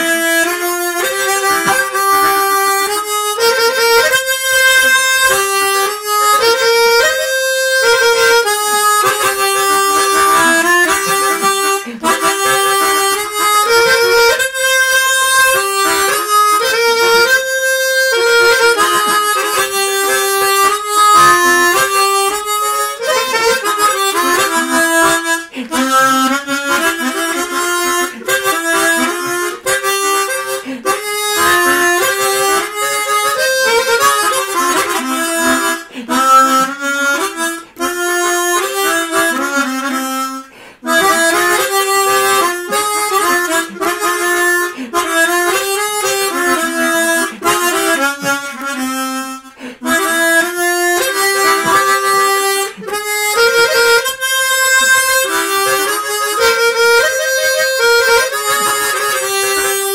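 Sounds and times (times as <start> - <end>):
chromatic harmonica melody: 0.0 - 59.9.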